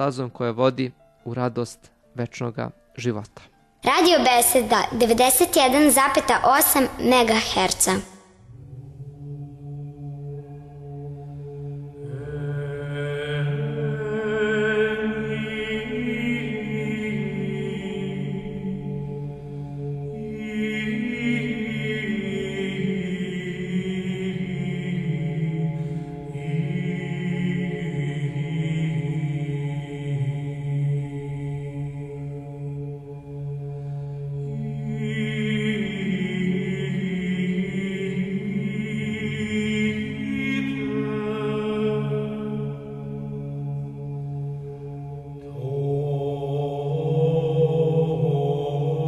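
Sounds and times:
slow sung church chant: 8.0 - 49.0.

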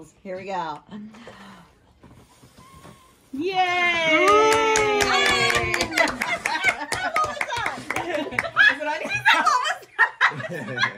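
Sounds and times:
excited voices: 3.4 - 9.9
group cheering: 3.6 - 9.8
hand claps: 4.1 - 8.6.

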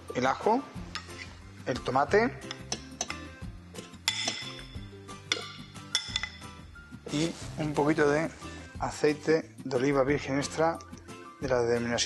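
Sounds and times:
background music: 0.0 - 12.0
metal spoon clinking on bowl: 2.4 - 3.3, 4.1 - 6.6.

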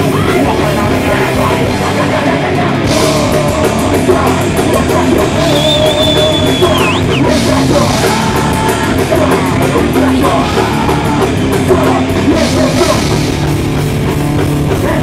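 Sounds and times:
metal band playing live: 0.0 - 15.0.

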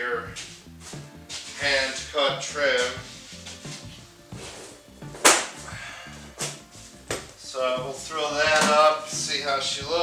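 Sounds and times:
background music: 0.0 - 10.0
trim strip whip-like slap: 5.2 - 5.6.

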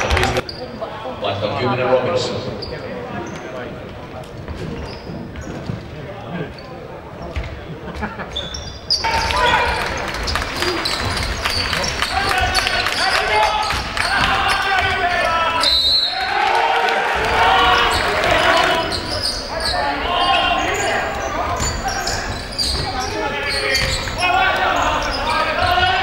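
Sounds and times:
unclear voices: 0.0 - 26.0
ball bouncing on court: 9.0 - 15.4, 21.5 - 24.2.

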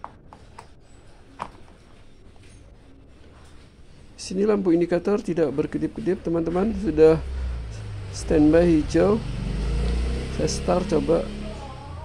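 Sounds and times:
low steady hum: 0.8 - 12.0.

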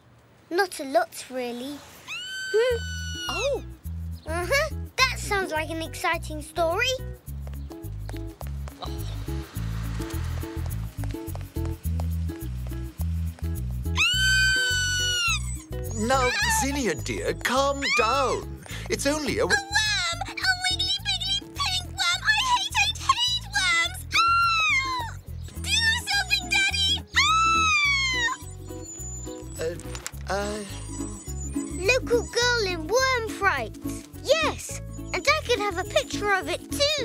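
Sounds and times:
girl screaming: 2.1 - 3.6, 14.0 - 16.7, 19.6 - 20.6, 23.5 - 28.5
bouncy cartoon music: 2.8 - 9.5, 10.5 - 37.0.

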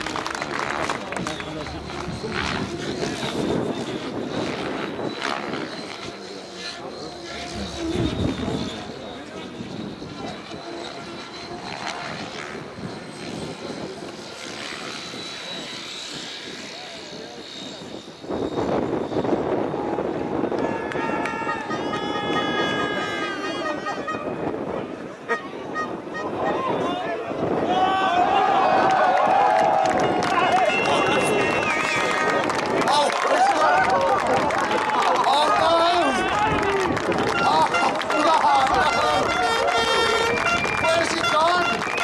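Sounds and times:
rc helicopter motor whine: 0.0 - 25.2, 29.7 - 42.0
crowd noise and raised voices: 0.0 - 42.0
voices of onlookers: 0.0 - 42.0.

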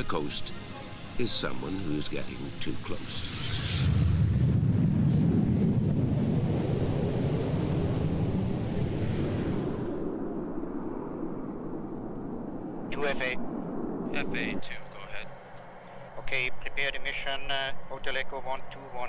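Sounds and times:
steady high tone: 0.0 - 3.9, 10.5 - 19.0
jet engines rumbling at takeoff: 0.0 - 19.0
radio voice: 12.9 - 13.4, 14.1 - 15.4, 16.1 - 19.0.

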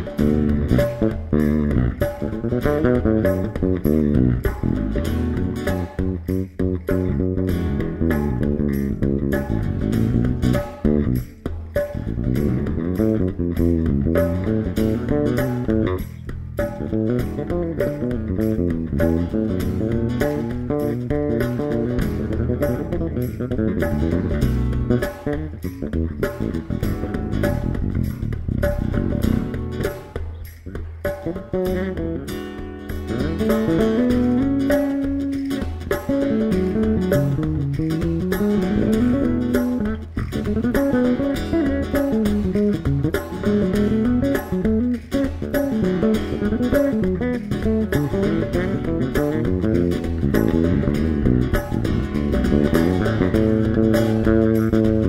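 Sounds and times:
electric bass guitar solo: 0.0 - 55.0
hand drum keeping time: 0.0 - 55.0.

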